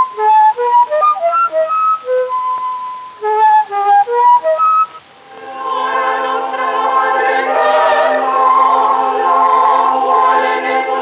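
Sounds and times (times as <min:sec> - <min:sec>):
choir singing sustained chords: 0:05.2 - 0:11.0.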